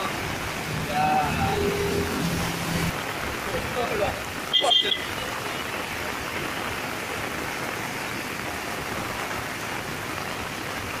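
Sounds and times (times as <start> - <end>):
floodwater rushing: 0.0 - 11.0
heavy rain hissing: 0.0 - 11.0.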